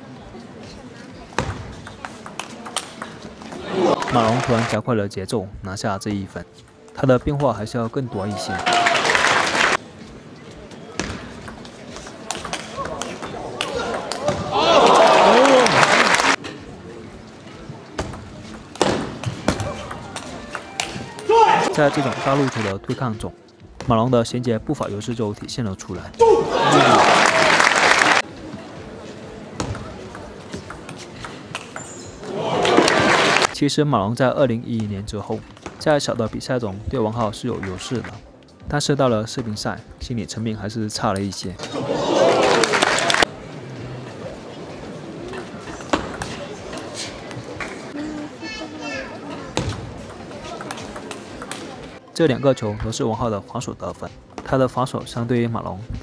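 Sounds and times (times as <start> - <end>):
spectators murmuring and chattering: 0.0 - 7.0, 7.7 - 23.8, 24.6 - 56.0
spectators applauding and cheering: 3.6 - 4.8, 8.3 - 9.8, 13.6 - 16.4, 20.8 - 22.7, 26.4 - 28.2, 32.3 - 33.5, 41.8 - 43.3
table tennis ball hits: 11.0 - 14.6, 18.0 - 21.4, 45.4 - 47.8, 49.6 - 51.9
person shouting: 21.3 - 21.8, 26.2 - 27.1.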